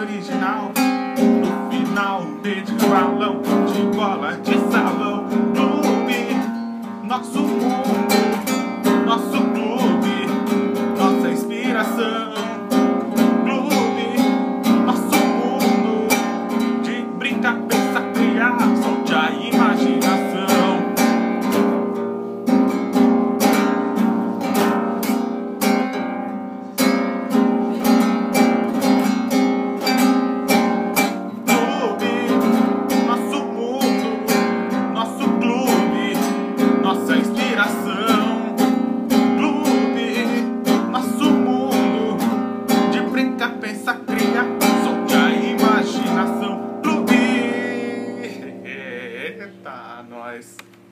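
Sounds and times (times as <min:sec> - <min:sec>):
man singing: 0:00.0 - 0:21.8, 0:29.9 - 0:50.6
acoustic guitar strumming: 0:00.0 - 0:50.9.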